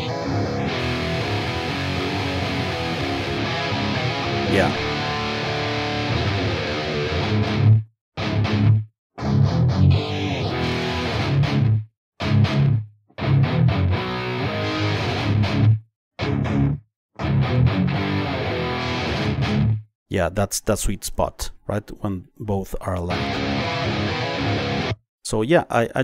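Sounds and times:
electric guitar riff: 0:00.0 - 0:19.8, 0:23.1 - 0:25.0.

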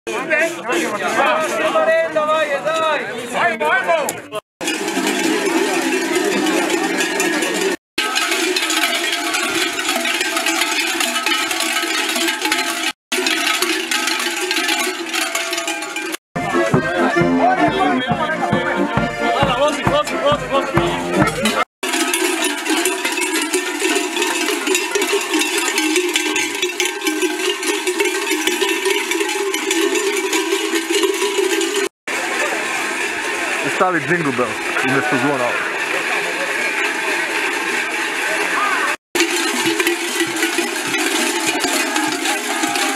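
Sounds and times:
large cowbells clanging: 0:00.1 - 0:03.1, 0:04.6 - 0:42.9
accordion music: 0:16.4 - 0:22.2, 0:33.6 - 0:37.6.

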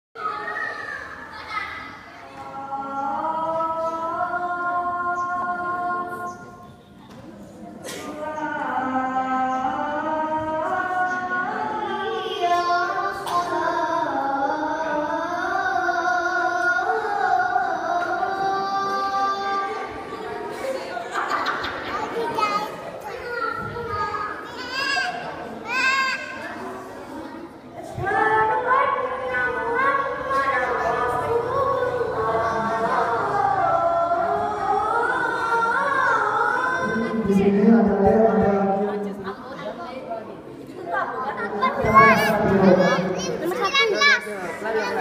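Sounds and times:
children chattering and calling: 0:00.2 - 0:45.0.

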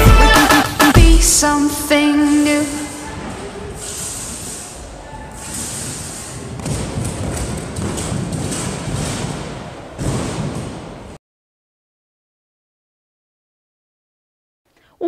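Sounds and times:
music: 0:00.0 - 0:03.0
gym hall noise: 0:00.0 - 0:11.2
thuds on trampoline and mats: 0:05.3 - 0:11.2.

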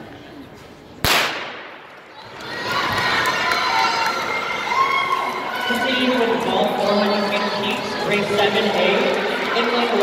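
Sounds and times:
starting pistol shot: 0:01.0 - 0:01.8
spectators cheering and shouting: 0:02.1 - 0:10.0.

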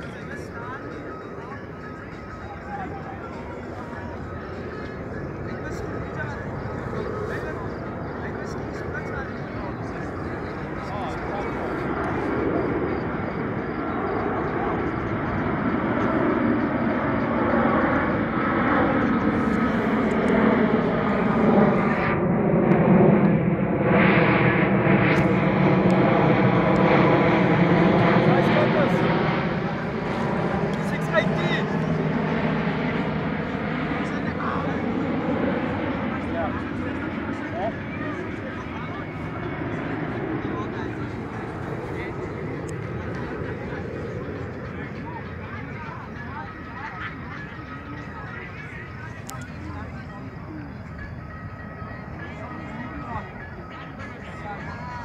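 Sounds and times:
aircraft passing overhead: 0:00.0 - 0:55.0.

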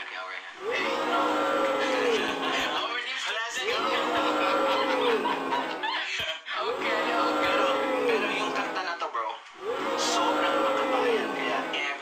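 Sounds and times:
pitch-corrected male vocal: 0:00.5 - 0:09.0, 0:09.6 - 0:12.0.

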